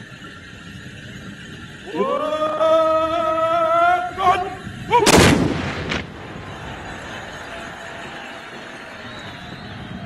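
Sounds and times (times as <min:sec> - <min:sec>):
musket volley blast: 0:05.0 - 0:07.2
faint gunshot crack: 0:05.1 - 0:06.1.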